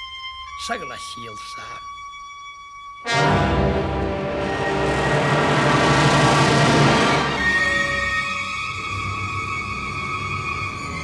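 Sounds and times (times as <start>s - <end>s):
symphony orchestra playing: 3.0s - 11.0s.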